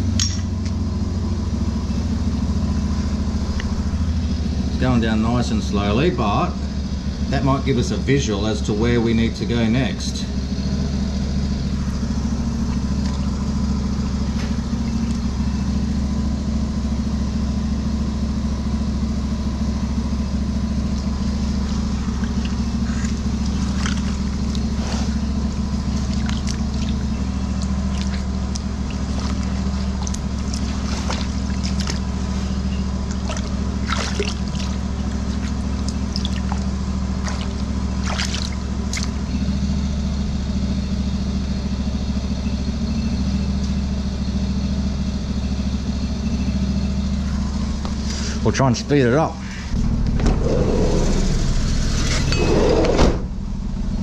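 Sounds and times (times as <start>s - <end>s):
engine droning: 0.0s - 54.0s
water splashing and trickling: 11.9s - 15.3s, 20.8s - 39.3s.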